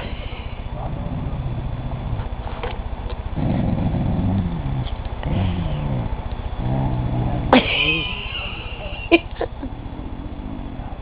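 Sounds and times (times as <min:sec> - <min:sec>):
dog moaning growl: 0:00.0 - 0:08.9, 0:09.6 - 0:11.0.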